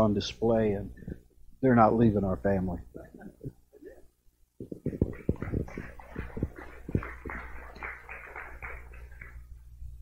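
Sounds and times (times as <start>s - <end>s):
microphone handling thumps and rustles: 4.6s - 7.1s.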